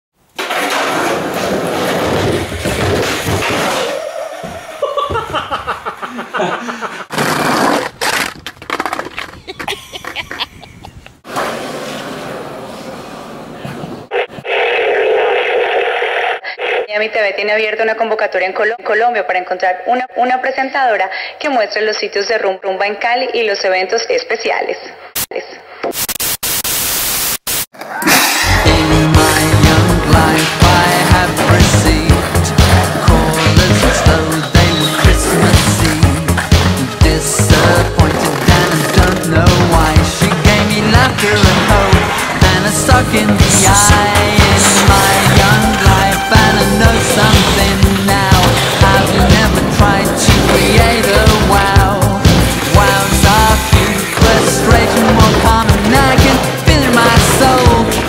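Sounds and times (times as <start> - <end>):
skateboard wheels rolling on plywood: 0.3 - 5.7, 7.1 - 10.4, 11.2 - 14.7, 28.7 - 58.0
loud static hiss: 25.9 - 27.7.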